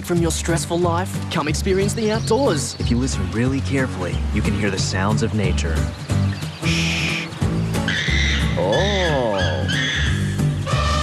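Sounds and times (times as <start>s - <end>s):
cartoon background music: 0.0s - 11.0s
comic animal call effect: 7.9s - 11.0s.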